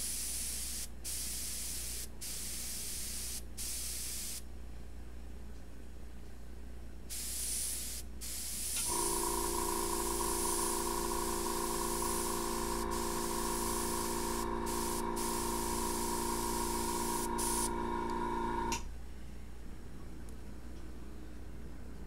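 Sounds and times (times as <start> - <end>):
air compressor motor hum: 0.0 - 4.4, 7.1 - 18.8
airbrush spraying hiss: 0.0 - 4.4, 7.1 - 17.8.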